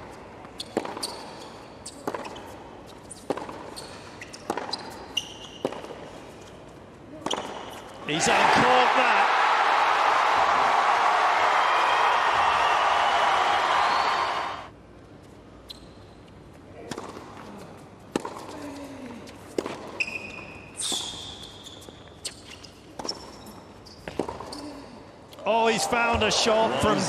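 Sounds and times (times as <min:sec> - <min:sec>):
shoe squeaks on hard court: 0:00.5 - 0:08.0, 0:15.6 - 0:16.4, 0:19.7 - 0:24.8
tennis ball bouncing: 0:03.2 - 0:05.0, 0:05.6 - 0:06.1, 0:18.1 - 0:18.5
crowd applauding and cheering: 0:08.1 - 0:14.7, 0:25.6 - 0:27.0.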